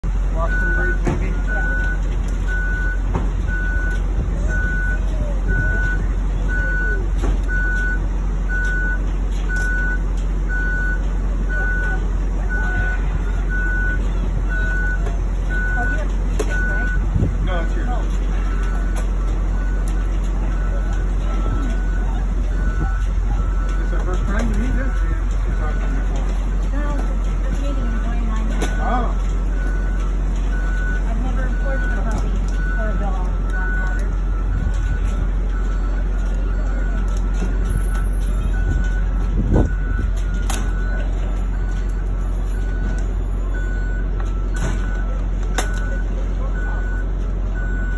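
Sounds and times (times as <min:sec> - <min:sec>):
backup alarm beeping: 0:00.4 - 0:47.9.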